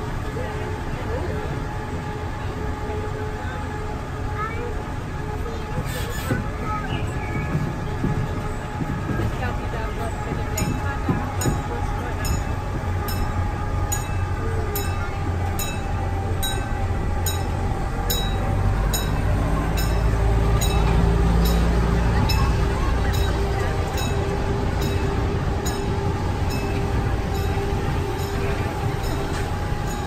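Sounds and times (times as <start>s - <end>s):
monorail train low rumble: 0.0s - 30.0s.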